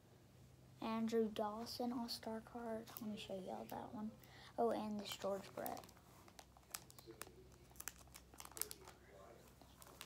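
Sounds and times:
plastic pages crinkling: 4.8 - 10.0.

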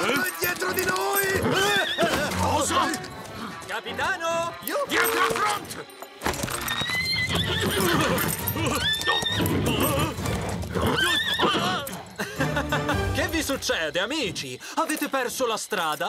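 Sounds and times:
cartoon horses neighing: 0.0 - 3.7, 6.5 - 12.8
background music: 0.0 - 15.9
hoofbeats: 0.0 - 16.0.

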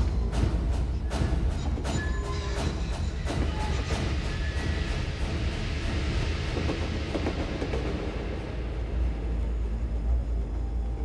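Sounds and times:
cinematic music: 0.0 - 11.0
low rumble: 0.0 - 11.0
train rumbling and clattering: 0.0 - 11.0.

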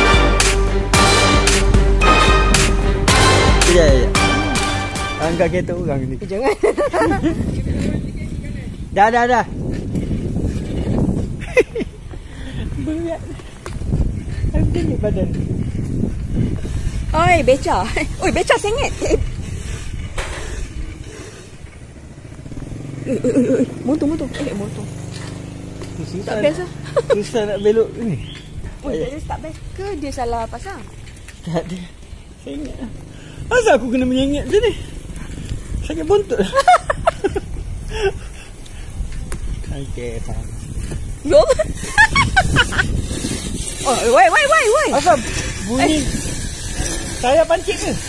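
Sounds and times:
wind noise on microphone: 5.2 - 22.8, 28.1 - 31.3, 32.1 - 48.0
tricycle rolling: 6.0 - 48.0
woman shrieking laughter: 41.4 - 42.9.

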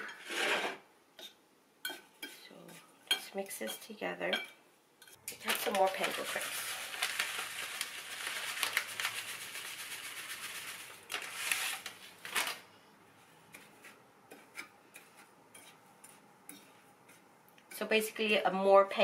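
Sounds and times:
fork scraping in ceramic bowl: 13.6 - 17.8.

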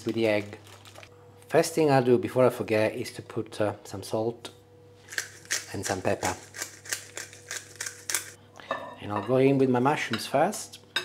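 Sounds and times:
pepper mill grinding clicks: 5.1 - 8.4.

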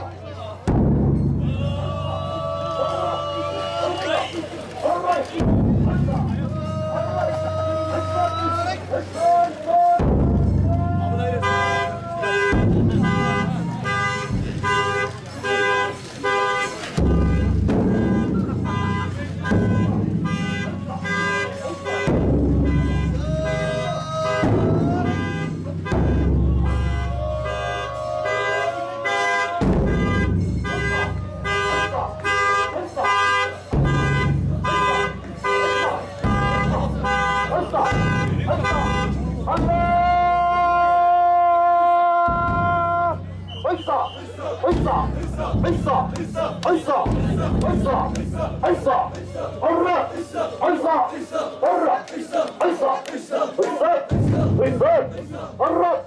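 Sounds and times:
voices: 0.0 - 56.0
taiko drum booming: 0.6 - 1.8, 5.4 - 6.8, 10.0 - 11.4, 12.3 - 14.8, 17.0 - 27.6, 29.6 - 32.1, 33.6 - 35.3, 36.2 - 40.4, 42.3 - 43.2, 44.7 - 49.3, 54.1 - 55.2.

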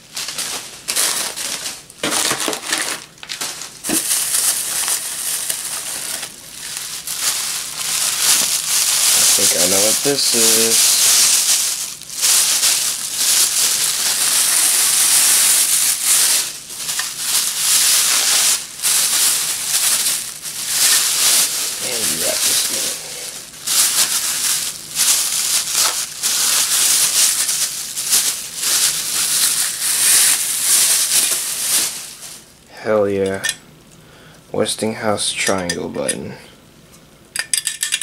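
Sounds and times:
plastic bags crinkling: 0.0 - 32.8.

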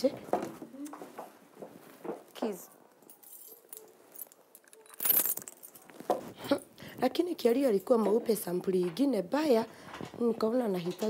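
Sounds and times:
faint handling noises: 0.0 - 11.0.

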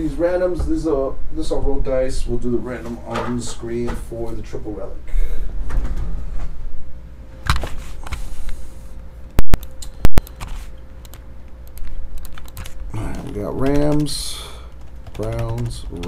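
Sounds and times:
typing on keyboard: 9.6 - 16.0.

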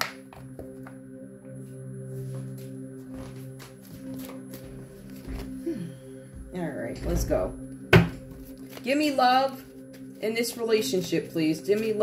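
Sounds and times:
soft background music: 0.0 - 12.0
cards clicking while shuffled: 3.2 - 5.5.

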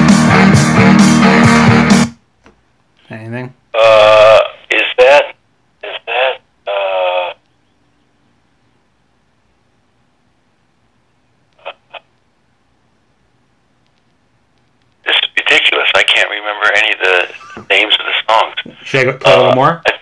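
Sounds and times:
person making wordless vocal sounds: 3.8 - 4.7, 6.0 - 7.4.

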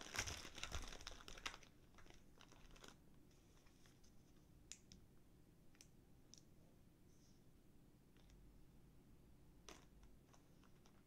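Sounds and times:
plastic wrapping clicks: 0.0 - 3.0.

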